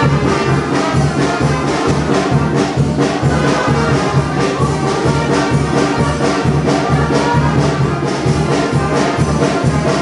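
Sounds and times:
loud brass band music: 0.0 - 10.0.

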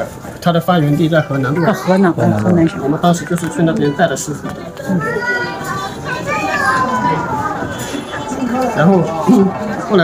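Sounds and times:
child's high-pitched voice: 4.9 - 7.8.

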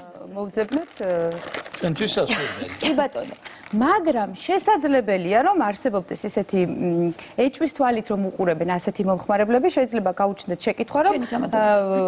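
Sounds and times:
woman speaking: 0.0 - 1.5, 2.8 - 12.0
plastic egg carton crinkling: 0.5 - 4.0.

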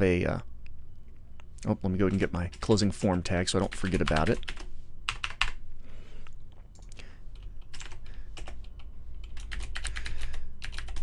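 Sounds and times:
typing on computer keyboard: 3.6 - 5.6, 6.8 - 11.0.

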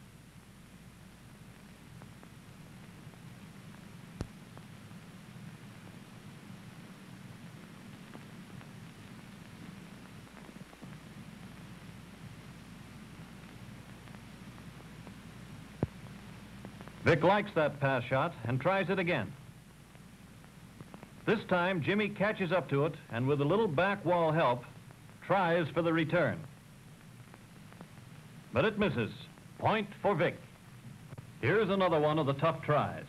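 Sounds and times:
film soundtrack hum and hiss: 0.0 - 33.0.

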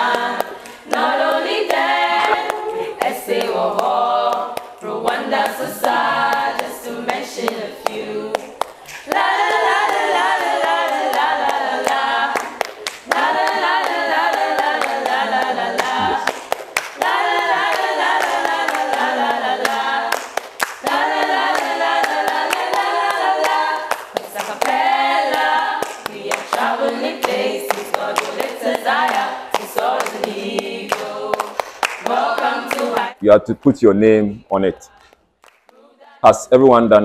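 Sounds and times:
choir singing a cappella: 0.0 - 33.2, 35.7 - 36.4
sharp claps: 5.5 - 19.0, 19.6 - 33.0, 35.0 - 35.8.

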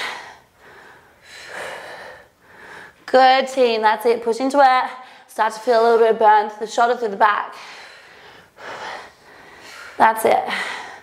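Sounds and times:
woman breathing hard: 0.0 - 3.0, 7.5 - 11.0.

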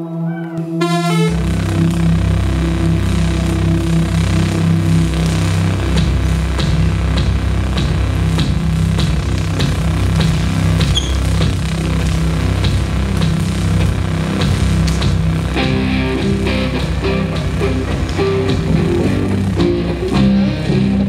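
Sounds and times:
low bass and guitar notes: 0.0 - 21.0
steady percussive beat: 5.2 - 21.0.

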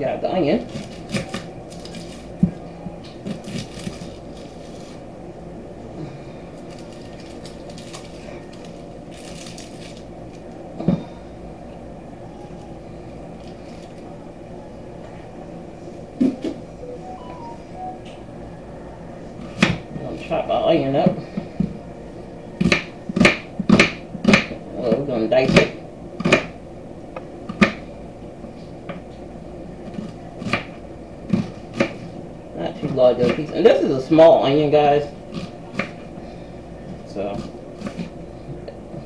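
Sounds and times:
onion skin rustling: 0.6 - 2.6, 3.2 - 5.1, 6.5 - 10.6, 12.4 - 14.1
low hum: 0.6 - 23.2
knife cutting onion on wooden board: 22.6 - 24.5, 37.3 - 38.2.

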